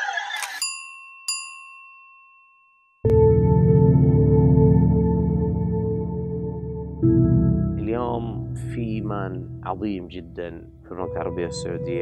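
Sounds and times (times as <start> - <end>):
bell-like ding: 0.6 - 3.1.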